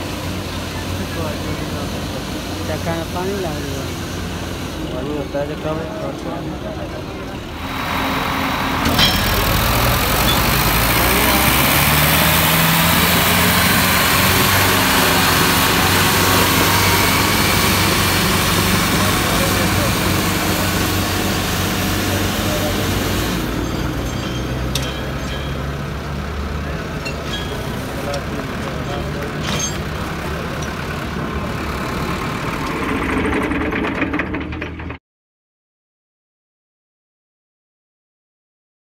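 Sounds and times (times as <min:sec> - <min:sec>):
tractor diesel engines straining: 0:00.0 - 0:35.0
voices: 0:00.3 - 0:32.2.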